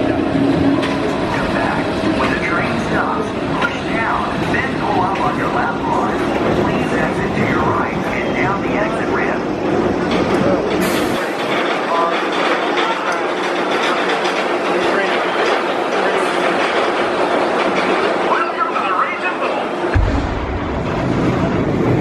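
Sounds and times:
roller coaster rumbling on track: 0:00.0 - 0:22.0
voices: 0:00.8 - 0:20.0.

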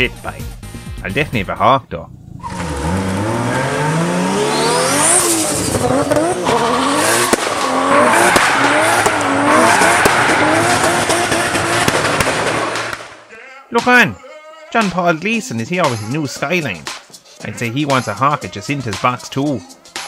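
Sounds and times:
car engine revving: 0:02.1 - 0:13.3
tyres squealing: 0:02.3 - 0:11.8.

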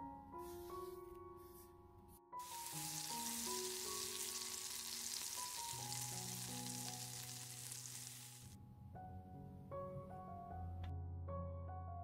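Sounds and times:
potatoes sizzling in oil: 0:02.4 - 0:08.6.

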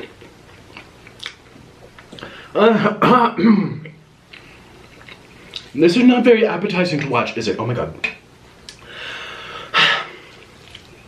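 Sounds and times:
person chewing noodles: 0:00.0 - 0:02.3, 0:04.3 - 0:05.7, 0:10.2 - 0:11.0.

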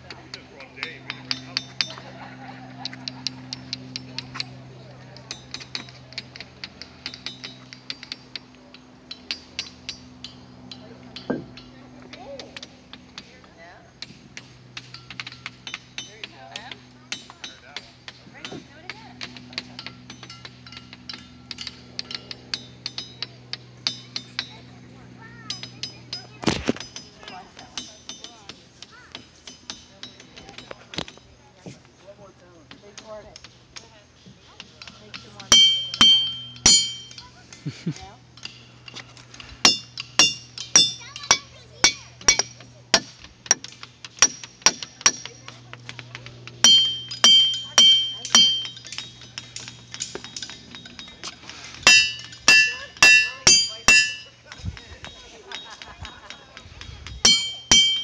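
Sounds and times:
hammers clinking on stone: 0:35.2 - 0:37.3, 0:39.6 - 0:46.0, 0:46.6 - 0:56.4, 0:57.2 - 0:58.0.

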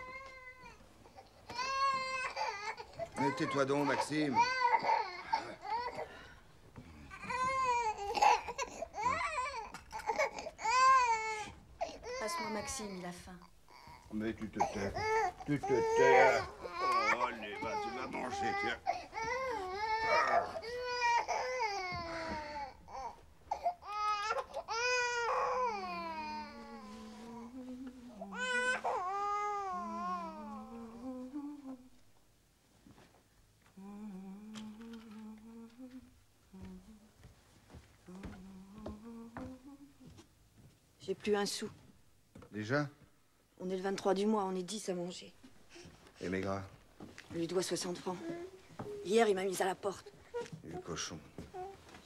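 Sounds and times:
baby crying: 0:00.0 - 0:06.2, 0:07.1 - 0:12.9, 0:13.7 - 0:27.0, 0:28.3 - 0:31.1
adult humming low note: 0:26.0 - 0:28.4, 0:29.6 - 0:32.0, 0:33.8 - 0:37.3, 0:38.1 - 0:40.2.

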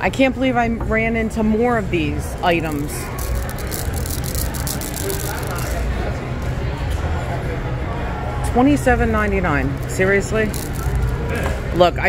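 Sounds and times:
murmur of busy store: 0:00.0 - 0:12.0
shop background music: 0:00.0 - 0:12.0
plastic tumbler rattling: 0:02.6 - 0:05.8, 0:09.8 - 0:11.2.

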